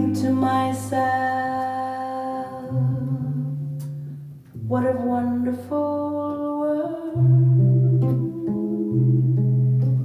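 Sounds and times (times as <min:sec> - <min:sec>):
woman singing: 0:00.0 - 0:03.9, 0:04.6 - 0:10.0
guitar: 0:00.0 - 0:10.0.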